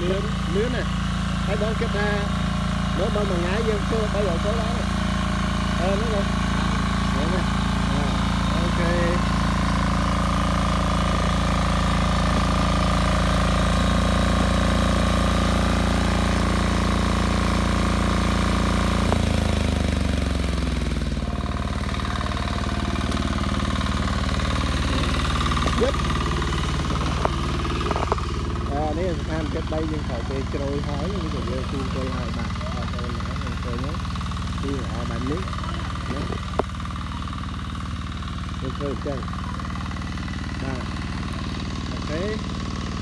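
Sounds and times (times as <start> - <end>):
tiller engine running: 0.0 - 43.0.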